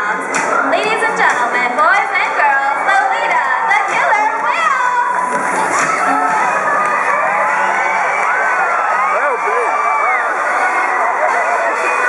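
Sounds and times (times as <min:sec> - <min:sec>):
stadium crowd cheering: 0:00.0 - 0:12.0
children shouting: 0:02.2 - 0:12.0.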